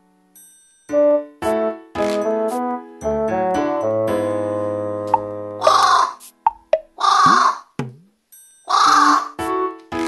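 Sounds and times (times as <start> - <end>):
background music: 0.0 - 10.0
crow cawing: 5.6 - 6.2, 7.0 - 7.7, 8.7 - 9.4.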